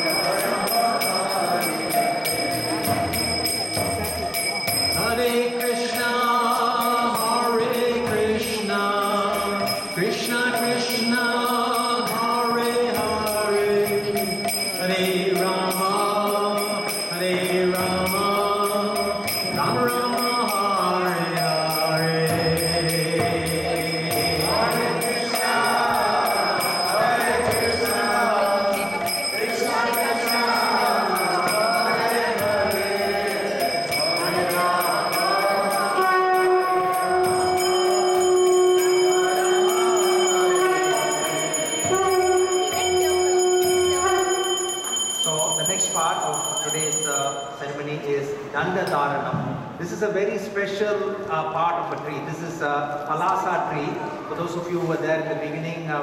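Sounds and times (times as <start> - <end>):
voices chanting: 0.0 - 5.4, 22.4 - 45.0
metallic clinking beat: 0.0 - 47.6
hand bell ringing: 0.0 - 47.8.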